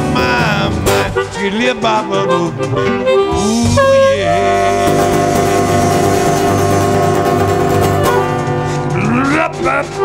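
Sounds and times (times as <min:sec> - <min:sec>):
live band holding a chord: 0:00.0 - 0:10.0
drum and cymbal hits: 0:02.6 - 0:09.9.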